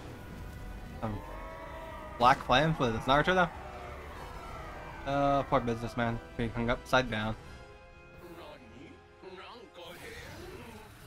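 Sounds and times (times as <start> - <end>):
background soundtrack music: 0.0 - 11.0.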